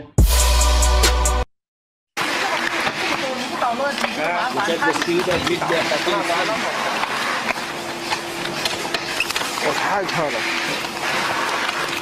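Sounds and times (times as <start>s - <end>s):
indistinct talk: 2.2s - 7.4s
workshop hum and hiss: 2.2s - 12.0s.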